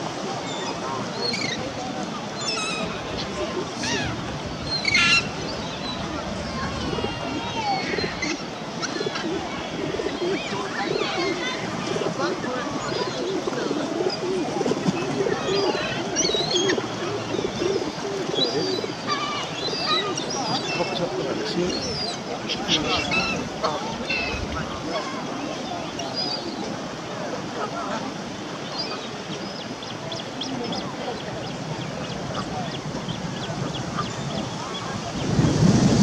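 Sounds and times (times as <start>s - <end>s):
murmur of voices: 0.0s - 36.0s
pigeons cooing: 2.3s - 26.6s
high wavering animal calls: 2.4s - 11.7s.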